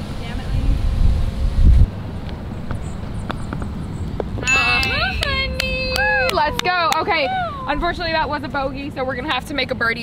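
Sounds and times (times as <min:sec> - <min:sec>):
wind buffeting microphone: 0:00.0 - 0:09.5.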